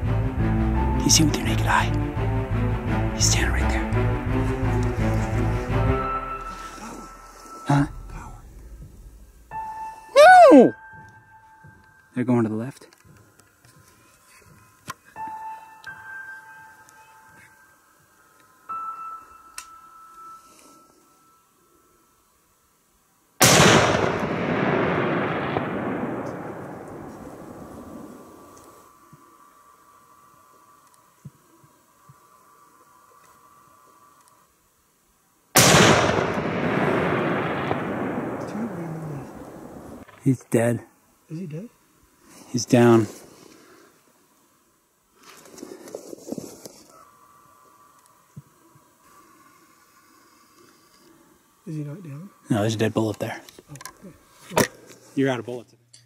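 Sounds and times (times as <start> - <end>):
rifle shots: 23.4 - 28.1, 35.6 - 40.1
gunshot echo off mountains: 23.4 - 28.4, 35.6 - 40.2.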